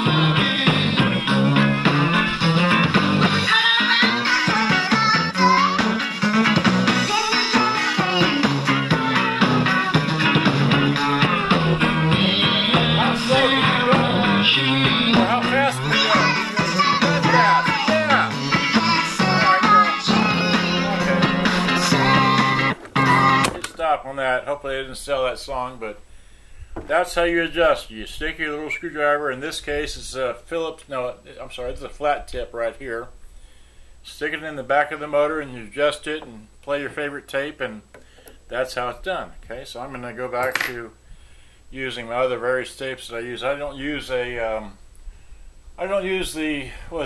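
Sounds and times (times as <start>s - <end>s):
song with guitar and singing: 0.0s - 23.7s.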